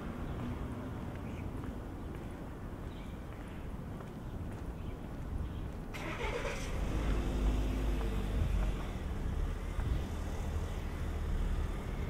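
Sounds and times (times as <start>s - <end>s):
vehicle engine running: 6.3s - 12.0s.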